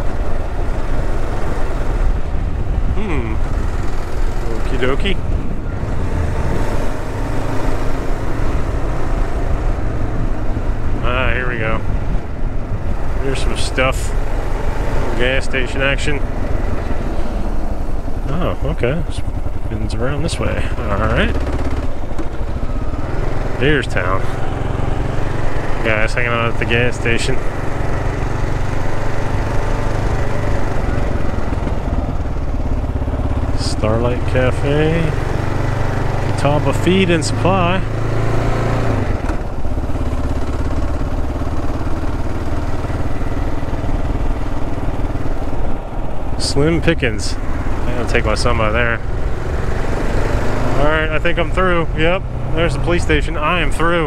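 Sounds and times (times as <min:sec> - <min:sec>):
wind noise: 0:00.0 - 0:15.2
motorcycle engine running: 0:00.0 - 0:54.0
wind on microphone: 0:05.2 - 0:07.2.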